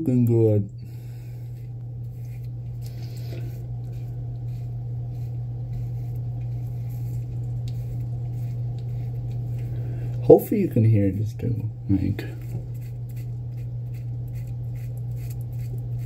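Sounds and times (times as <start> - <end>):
steady low hum: 0.0 - 16.0
razor scraping stubble: 0.9 - 16.0.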